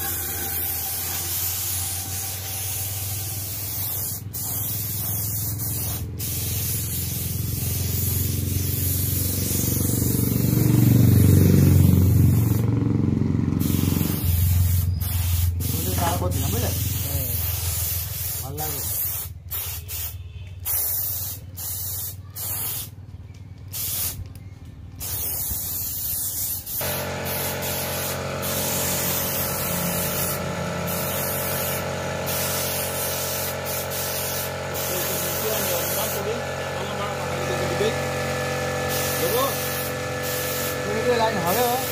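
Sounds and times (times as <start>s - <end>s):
compressed-air spray gun hissing: 0.0s - 12.7s, 13.6s - 23.0s, 23.7s - 24.3s, 24.9s - 41.9s.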